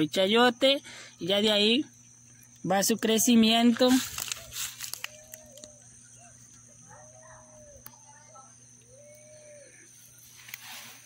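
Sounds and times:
faint background hum: 0.0 - 11.0
distant animal calls: 4.4 - 10.2.

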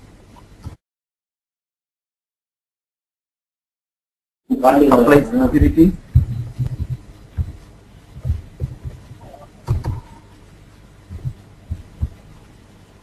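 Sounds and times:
computer keyboard typing: 9.6 - 10.1.

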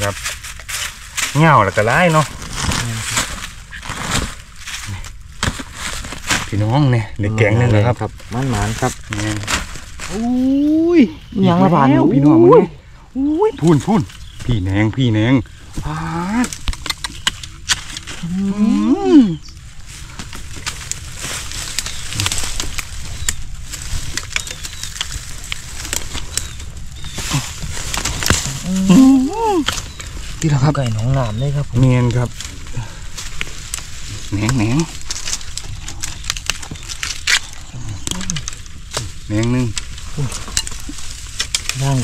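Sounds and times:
dry bamboo leaves crackling: 0.0 - 42.0.

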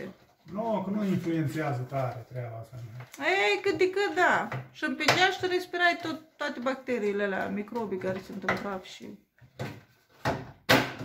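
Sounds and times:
plastic parts knocking and scraping: 0.0 - 11.0.

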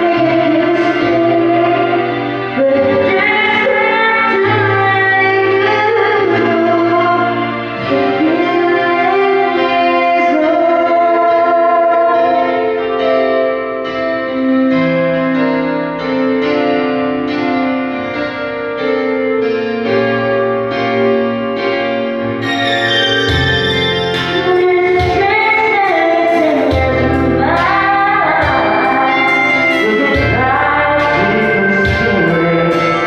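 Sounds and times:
woman singing a ballad: 0.0 - 12.9, 24.2 - 33.0
backing track chords: 0.0 - 33.0.

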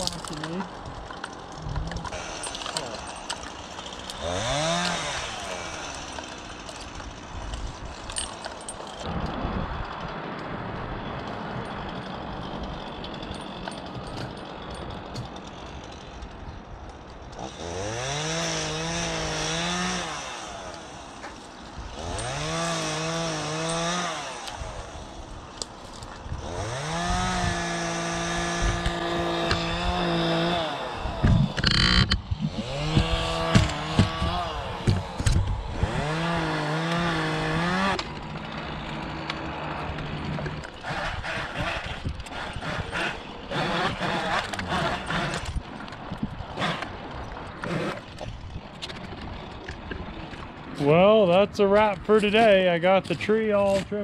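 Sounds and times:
chainsaw revving: 0.0 - 9.3, 11.5 - 48.5.

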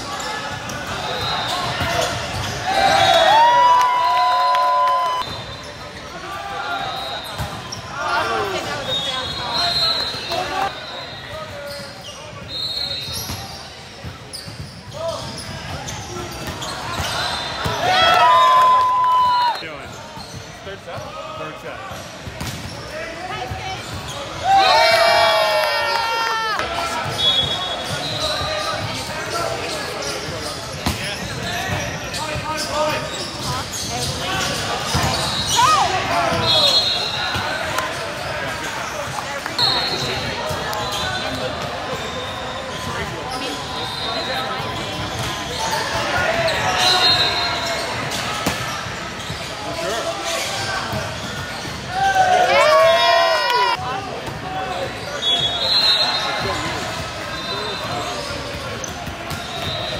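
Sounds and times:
players shouting: 0.9 - 5.3, 51.9 - 56.8.

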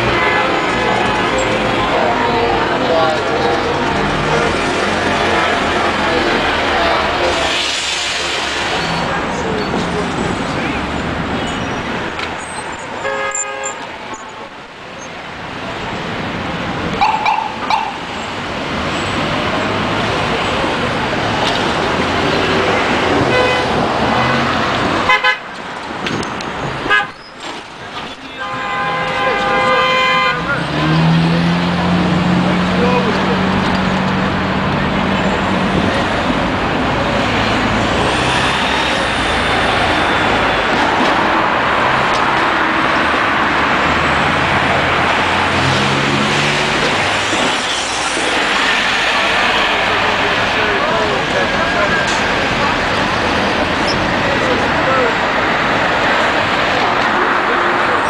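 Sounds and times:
car horn: 0.0 - 2.1, 13.0 - 13.8, 23.3 - 25.5, 26.8 - 27.2, 28.2 - 30.6
street traffic: 0.0 - 58.0.

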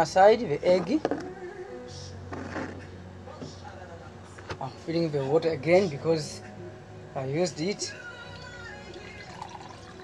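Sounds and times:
water pouring into glass jar: 8.4 - 10.0.

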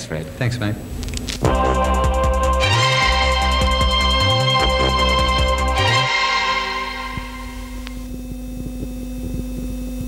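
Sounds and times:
electrical hum with high tone: 0.0 - 10.0.

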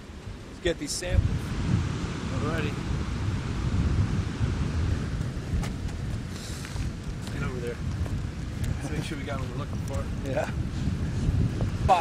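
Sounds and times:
surf washing on shore: 0.0 - 12.0
wind buffeting microphone: 0.0 - 12.0.

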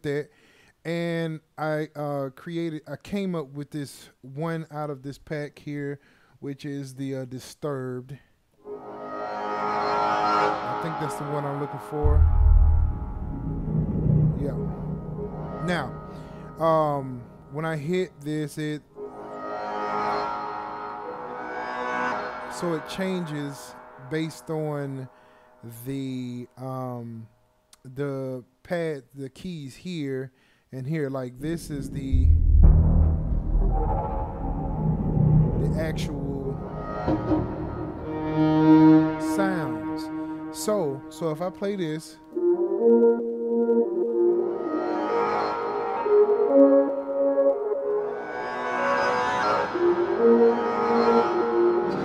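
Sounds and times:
shimmering synth chord: 8.7 - 17.8
sustained synth chord: 8.7 - 18.0, 31.6 - 41.3.

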